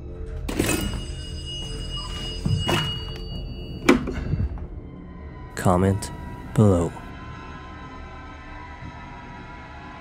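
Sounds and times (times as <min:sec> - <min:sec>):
dark background music: 0:00.0 - 0:10.0.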